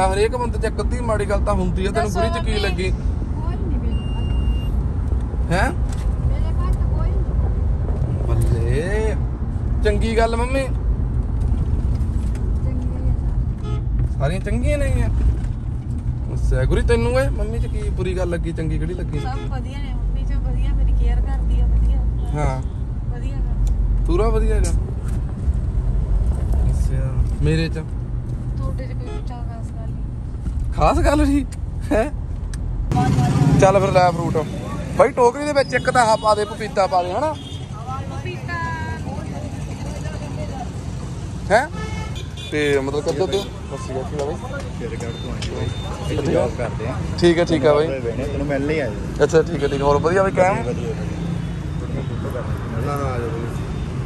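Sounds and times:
car engine rumble and road noise: 0.0 - 54.0
car horn toot: 13.6 - 14.0, 35.6 - 37.9, 41.6 - 46.5.

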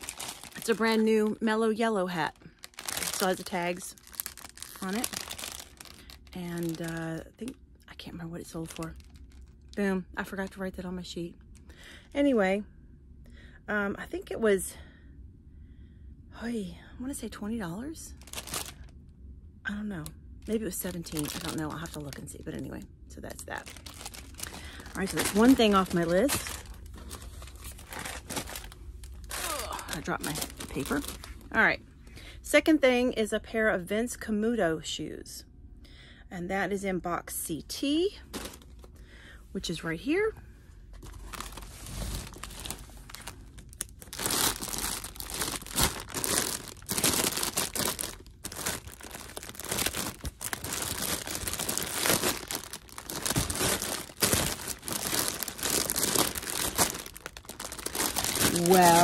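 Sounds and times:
rustling and crinkling: 0.0 - 1.4, 2.2 - 7.3, 8.6 - 9.8, 18.1 - 18.9, 20.4 - 22.6, 23.5 - 31.6, 38.2 - 39.0, 40.9 - 59.0
low steady hum: 0.0 - 59.0.

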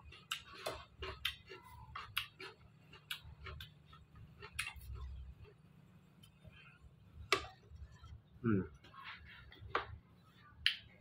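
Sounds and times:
mouth-smacking clicks while eating: 0.0 - 5.2.

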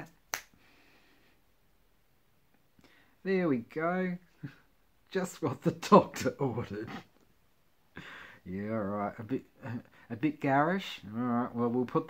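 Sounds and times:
finger snap: 0.0 - 0.6.

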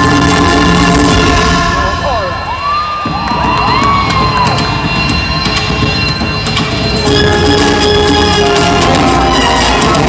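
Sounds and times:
loud live dance music: 0.0 - 10.0
audience cheering: 2.1 - 5.4.

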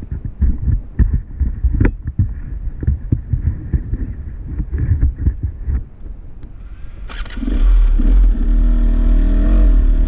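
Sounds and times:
dirt bike engine running roughly: 7.2 - 10.0.

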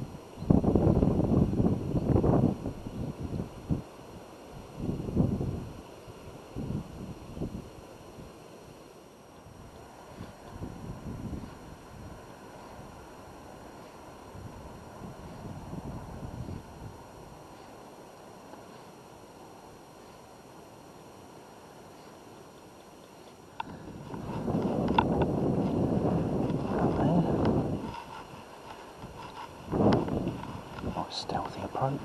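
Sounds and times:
wind buffeting microphone: 0.0 - 3.9, 4.5 - 8.3, 9.5 - 18.0, 23.2 - 32.0.

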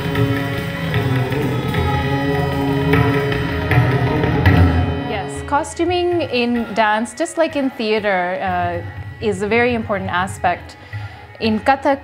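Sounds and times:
harmonium notes: 0.0 - 12.0
plucked string melody: 0.0 - 12.0
tabla strokes: 0.0 - 12.0.

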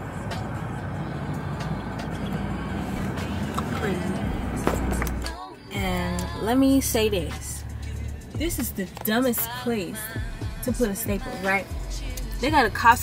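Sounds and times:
low rumble in car cabin: 0.0 - 13.0.

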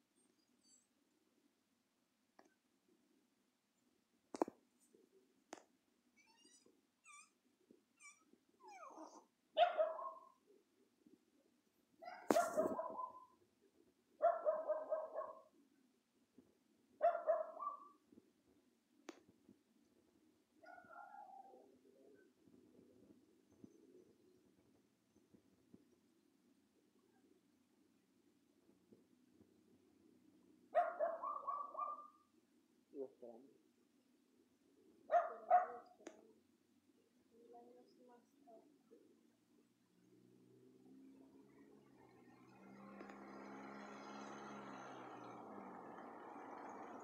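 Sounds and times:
dog barking: 8.7 - 10.4, 12.0 - 13.4, 14.2 - 15.5, 17.0 - 18.0, 20.6 - 21.7, 30.7 - 32.3, 35.1 - 36.0.

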